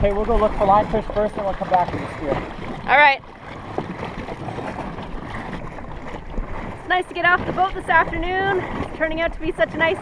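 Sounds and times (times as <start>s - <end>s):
water noise: 0.0s - 10.0s
wind: 0.0s - 10.0s.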